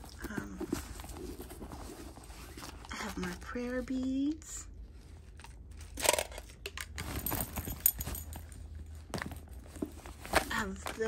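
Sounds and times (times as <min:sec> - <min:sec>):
rummaging in leather bag: 0:00.0 - 0:04.2, 0:06.9 - 0:11.0.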